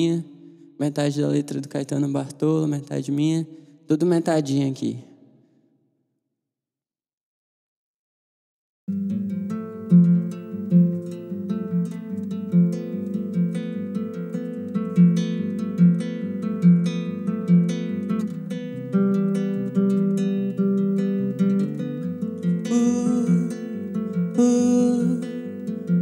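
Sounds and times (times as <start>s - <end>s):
fingerpicked classical guitar: 8.9s - 26.0s.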